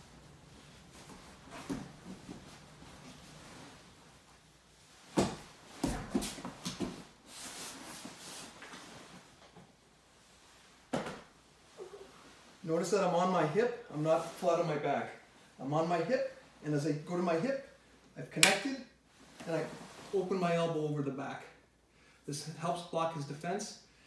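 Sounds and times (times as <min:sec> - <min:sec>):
fabric rustling: 0:00.0 - 0:12.8, 0:19.0 - 0:20.3
bodies scuffing on mat: 0:00.6 - 0:09.3.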